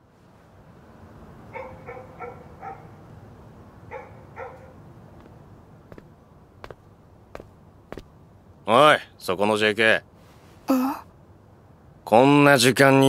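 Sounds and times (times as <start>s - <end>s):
low steady background rumble: 0.0s - 13.0s
dog barking: 1.5s - 3.0s, 3.9s - 4.8s.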